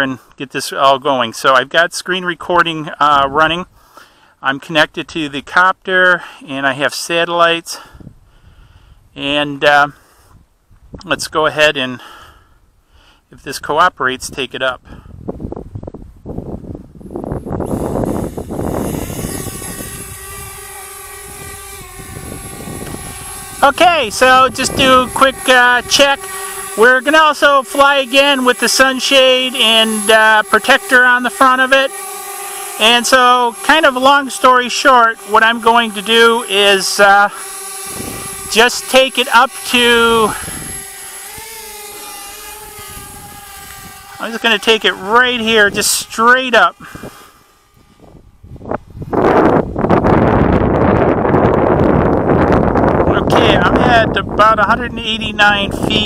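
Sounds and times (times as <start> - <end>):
drone propellers whining: 17.0 - 56.0.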